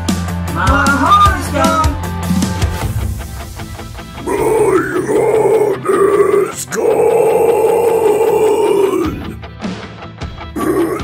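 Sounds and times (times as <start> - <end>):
singer holding long notes: 4.2 - 9.4.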